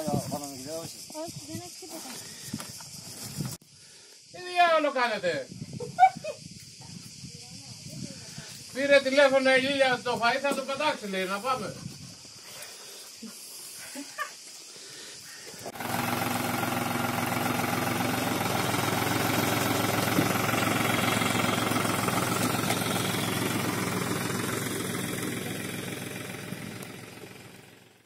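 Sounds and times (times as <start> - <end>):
faint outdoor sound: 0.0 - 28.0
tractor engine running: 15.7 - 28.0.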